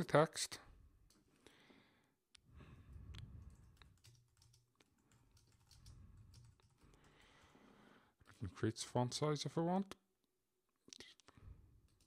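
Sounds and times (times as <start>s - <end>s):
keyboard typing: 3.4s - 7.5s.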